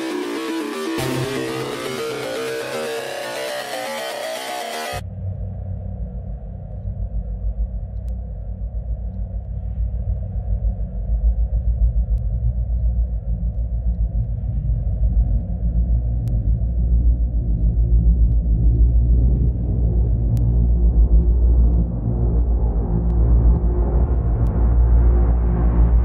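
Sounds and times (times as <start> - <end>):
dark electronic synth bass: 0.0 - 26.0.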